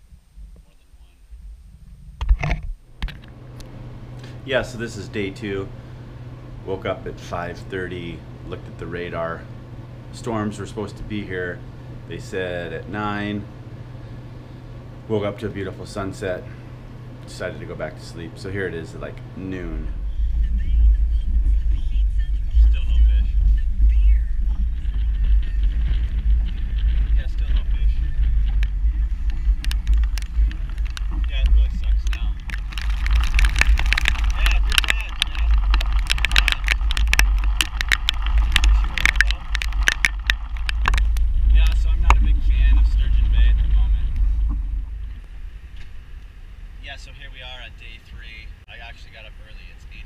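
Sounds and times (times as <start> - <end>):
rain hitting camera and boat: 2.2 - 20.1, 23.8 - 49.7
wind buffeting microphone: 19.7 - 46.9.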